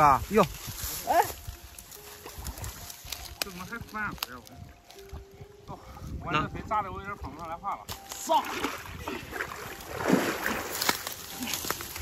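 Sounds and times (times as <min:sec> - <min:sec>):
reed stems rustling and cracking: 0:00.0 - 0:06.1, 0:07.2 - 0:12.0
water splashing: 0:01.6 - 0:05.4, 0:07.8 - 0:12.0.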